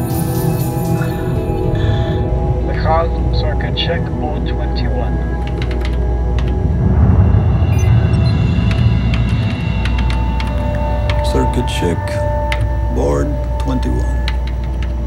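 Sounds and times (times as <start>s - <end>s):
ominous low drone music: 0.0s - 15.0s
keyboard clicks: 5.4s - 6.6s.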